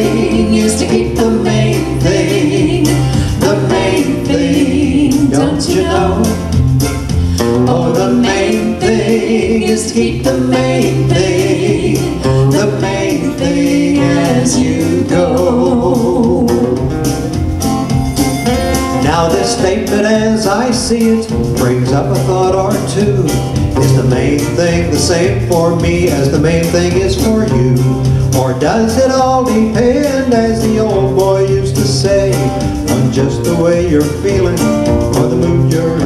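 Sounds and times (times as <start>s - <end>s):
man and woman singing: 0.0s - 6.6s, 7.2s - 17.2s, 18.7s - 36.0s
instrumental backing track with guitar: 0.0s - 36.0s.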